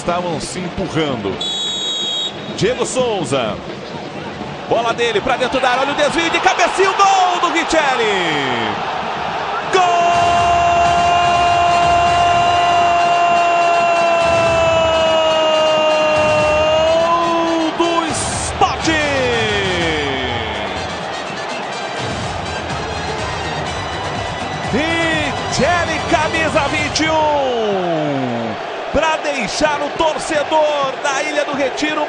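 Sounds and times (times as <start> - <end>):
broadcast background noise: 0.1 - 10.1
commentator shouting goal: 4.7 - 8.8, 9.6 - 20.9, 24.7 - 32.0.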